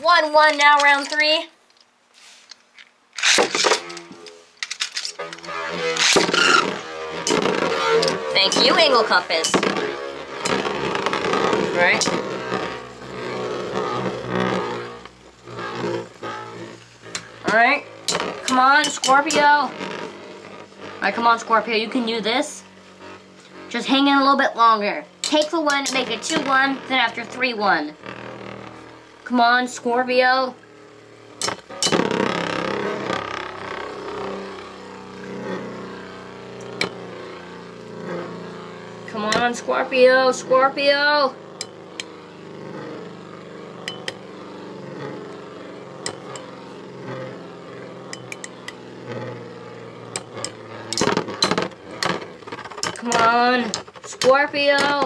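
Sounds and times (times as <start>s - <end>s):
spinning tops clicking: 0.0s - 1.9s, 2.5s - 55.0s
spinning tops whirring: 0.0s - 55.0s.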